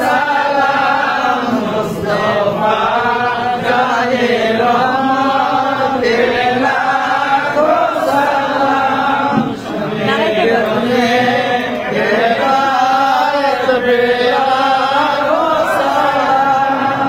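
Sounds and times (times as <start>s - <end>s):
group of voices chanting: 0.0s - 17.0s.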